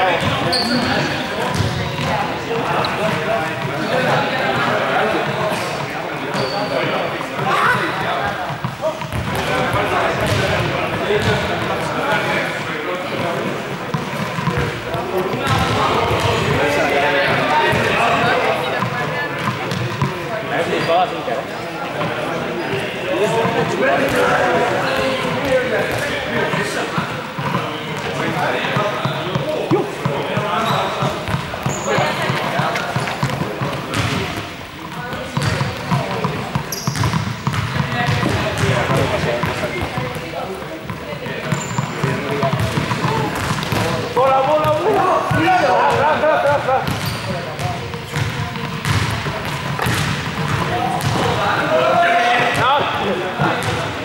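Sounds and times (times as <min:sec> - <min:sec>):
balls bouncing on court floor: 0:00.0 - 0:21.1, 0:21.8 - 0:54.0
young people talking and calling out: 0:00.0 - 0:54.0.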